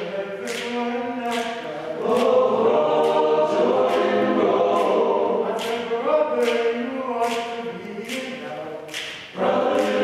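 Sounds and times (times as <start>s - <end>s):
male choir singing in harmony: 0.0s - 10.0s.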